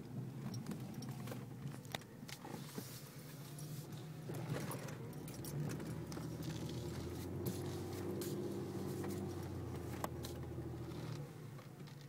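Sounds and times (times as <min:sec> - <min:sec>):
car engine and road hum: 0:00.0 - 0:12.0.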